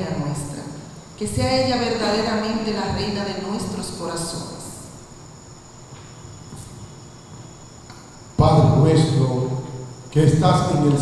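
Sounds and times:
crickets trilling: 0:00.0 - 0:11.0
low background noise: 0:00.0 - 0:11.0.

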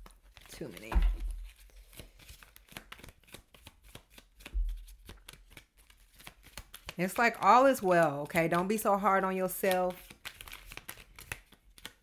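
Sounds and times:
cards being shuffled: 0:00.0 - 0:08.2, 0:09.6 - 0:12.0.

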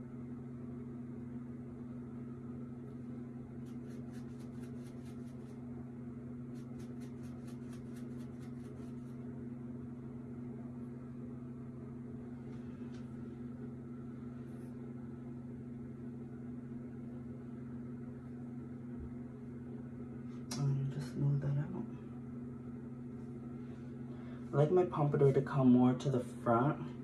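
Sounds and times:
low electrical hum: 0:00.0 - 0:27.0
comb brushing through hair: 0:03.6 - 0:05.7, 0:06.5 - 0:09.3.

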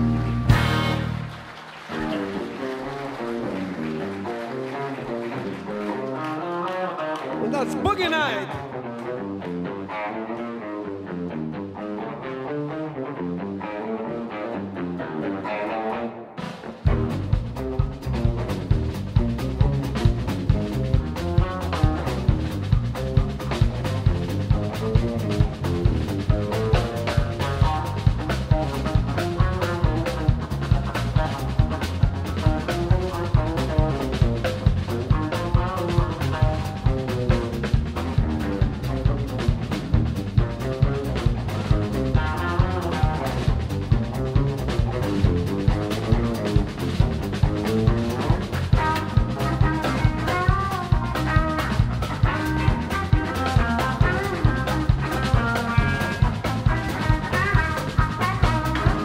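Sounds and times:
bass guitar: 0:00.0 - 0:59.0
drum kit: 0:00.0 - 0:59.0
electric guitar solo: 0:01.9 - 0:16.5, 0:40.4 - 0:59.0.

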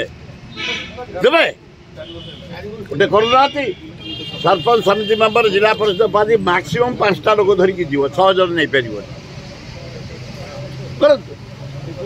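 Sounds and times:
man speaking: 0:00.0 - 0:09.1
road traffic hum: 0:00.0 - 0:12.0.

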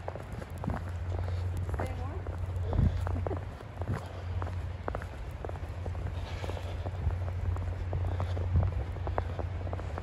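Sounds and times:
footsteps crunching in snow: 0:00.0 - 0:10.0.

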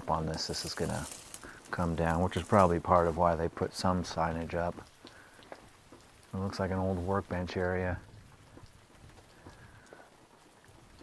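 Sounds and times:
water dripping from roof: 0:00.0 - 0:11.0.

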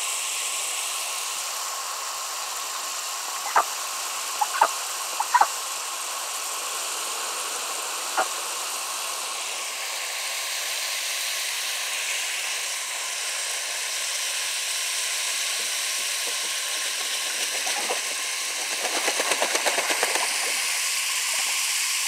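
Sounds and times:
hose nozzle spray hissing: 0:00.9 - 0:22.0.

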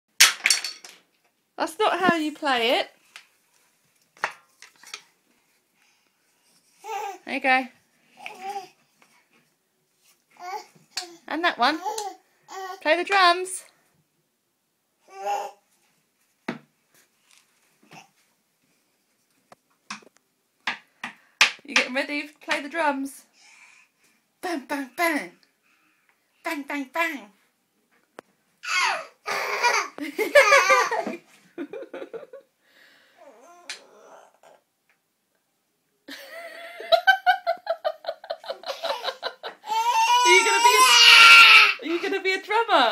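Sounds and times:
baby cooing: 0:10.4 - 0:12.8, 0:28.6 - 0:29.9, 0:33.2 - 0:34.7, 0:39.6 - 0:41.8.

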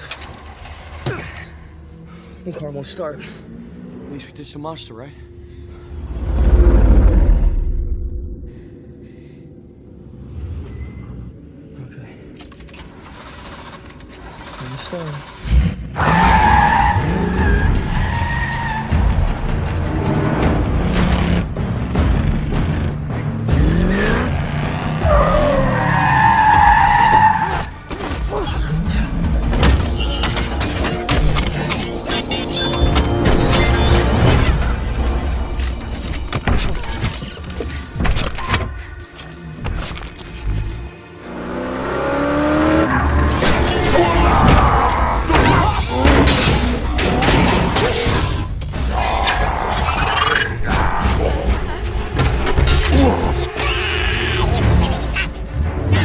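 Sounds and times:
film score: 0:00.0 - 0:56.0
car keys jangling in ignition: 0:12.2 - 0:14.2.

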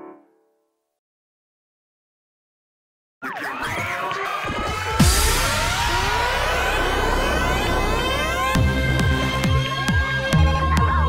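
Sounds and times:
synth tones sweeping upward: 0:04.6 - 0:10.3
low bass drone: 0:04.9 - 0:10.7.

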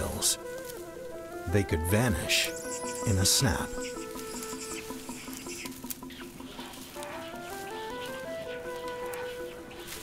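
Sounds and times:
leaves and twigs rustling: 0:00.0 - 0:10.0
soft background music: 0:00.0 - 0:10.0.

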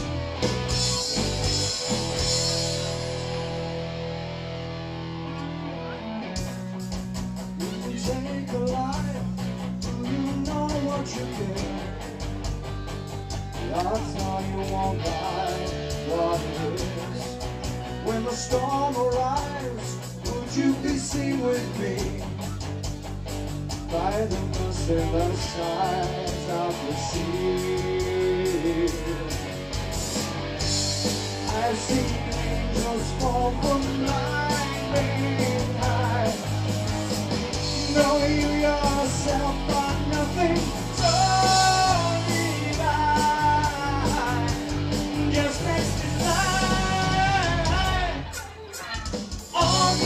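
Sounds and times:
live rock band playing: 0:00.0 - 0:50.0
man singing into a microphone: 0:07.6 - 0:12.0, 0:13.6 - 0:22.6, 0:23.9 - 0:29.5, 0:31.4 - 0:36.6, 0:37.6 - 0:50.0.

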